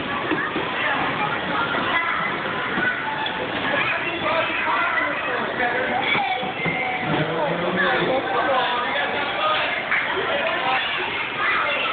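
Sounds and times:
people talking indistinctly: 0.0 - 11.9.

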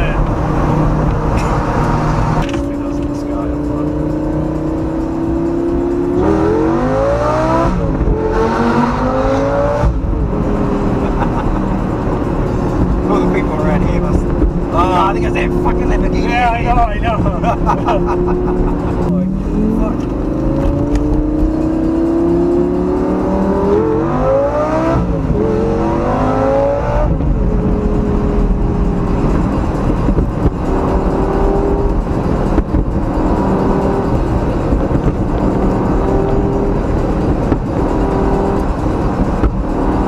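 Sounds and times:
sports car accelerating from inside: 0.2 - 40.0.

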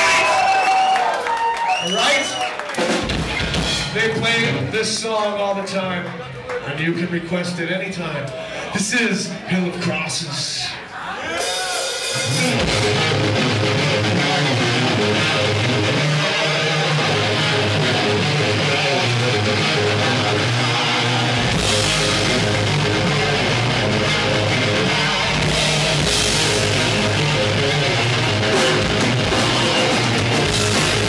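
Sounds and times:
live heavy metal band: 1.7 - 4.7, 11.4 - 31.0
electric guitar riff: 12.0 - 31.0.

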